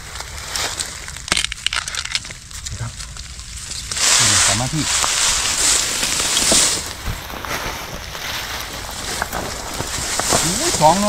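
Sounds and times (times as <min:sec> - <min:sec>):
dry bamboo crackling and snapping: 0:00.0 - 0:11.0.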